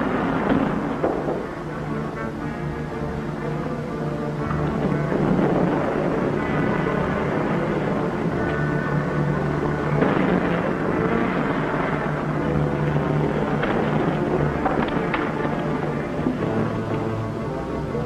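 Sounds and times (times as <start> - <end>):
background music sustained notes: 0.0 - 18.0.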